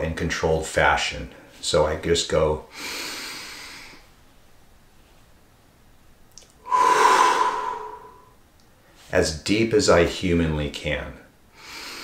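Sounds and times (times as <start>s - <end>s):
person breathing slowly: 6.6s - 8.4s.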